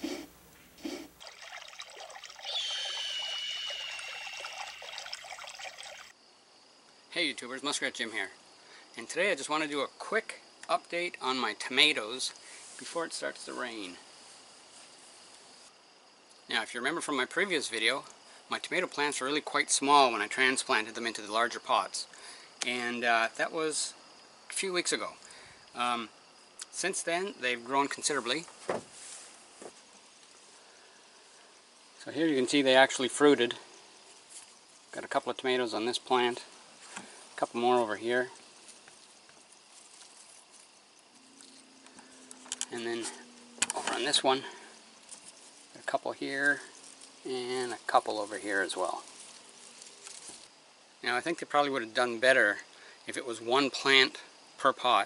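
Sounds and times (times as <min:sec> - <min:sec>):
faint outdoor background hiss: 0:00.0 - 0:55.0
liquid trickling and pouring: 0:01.2 - 0:06.1
thin high tone: 0:02.1 - 0:06.1.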